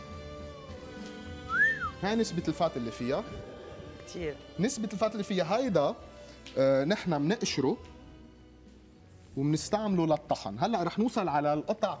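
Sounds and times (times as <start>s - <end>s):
background music with held notes: 0.0s - 12.0s
gliding whistle: 1.5s - 2.0s.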